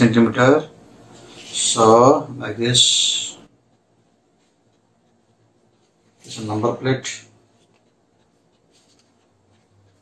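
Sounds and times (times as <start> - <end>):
pen scratching on paper: 3.7 - 10.0.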